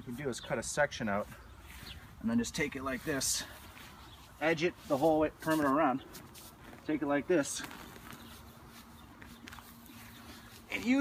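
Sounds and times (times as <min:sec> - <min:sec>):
grass turf tearing: 0:01.1 - 0:11.0.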